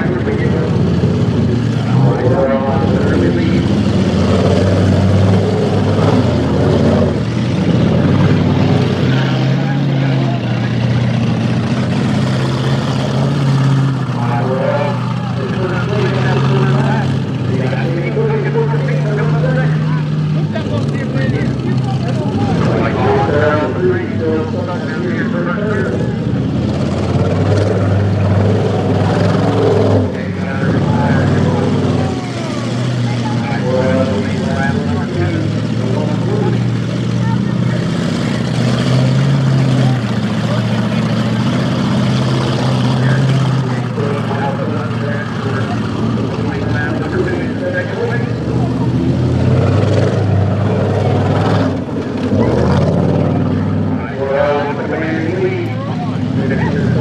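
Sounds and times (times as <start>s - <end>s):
car engines revving: 0.0s - 57.0s.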